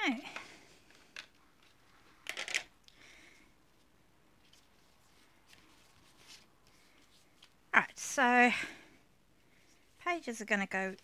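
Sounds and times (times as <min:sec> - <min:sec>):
faint handling sounds: 0:00.1 - 0:07.9, 0:09.2 - 0:11.0
paper rustling and scraping: 0:04.4 - 0:07.6.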